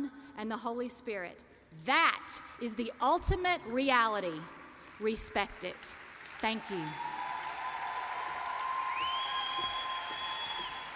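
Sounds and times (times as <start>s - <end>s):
audience applauding: 5.9s - 10.9s.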